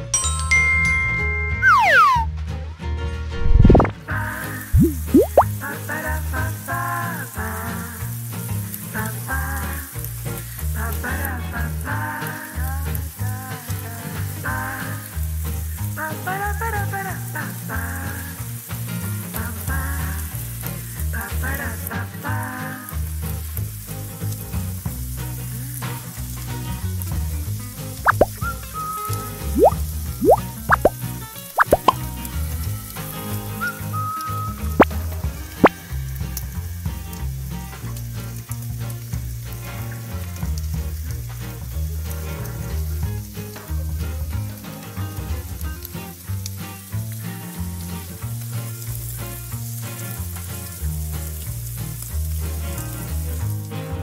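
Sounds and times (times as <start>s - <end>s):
crepe sizzling in a pan: 4.1s - 53.8s.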